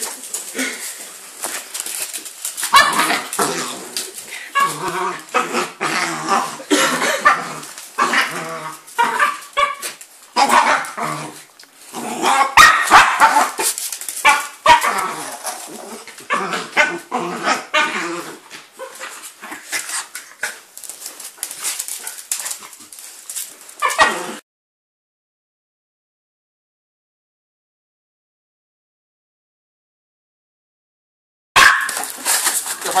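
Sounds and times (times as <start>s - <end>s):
dogs yipping and whining: 23.8s - 24.4s.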